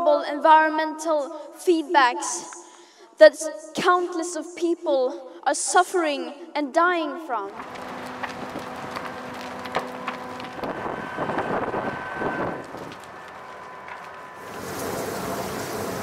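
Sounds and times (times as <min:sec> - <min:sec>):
fire crackling and popping: 0:07.5 - 0:16.0
house fire rushing roar: 0:07.5 - 0:16.0.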